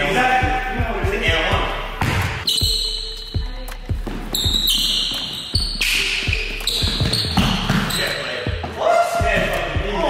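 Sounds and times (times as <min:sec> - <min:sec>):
basketball bouncing on wooden floor: 0:06.3 - 0:08.0.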